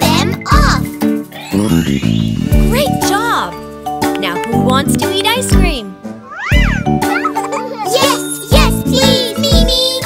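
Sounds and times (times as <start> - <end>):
bouncy children's music: 0.0 - 10.0.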